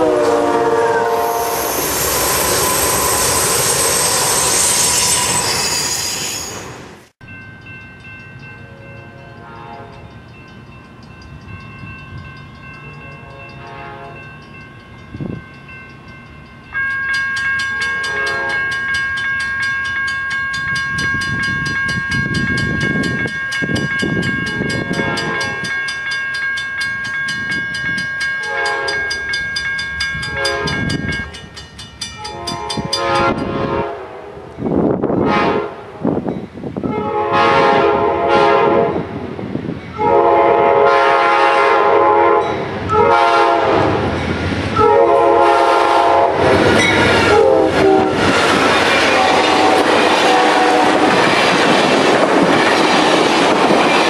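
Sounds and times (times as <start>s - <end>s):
locomotive air horn blasts: 0.0s - 3.3s, 8.6s - 10.0s, 13.1s - 14.2s, 17.8s - 18.7s, 24.9s - 25.6s, 28.5s - 29.1s, 30.3s - 30.9s, 32.3s - 34.5s, 35.2s - 36.1s, 36.8s - 39.1s, 40.0s - 44.1s, 44.8s - 46.6s, 47.2s - 48.2s, 49.0s - 51.2s
crossing bell ringing: 0.0s - 33.6s, 42.3s - 54.0s
freight train passing: 0.0s - 54.0s.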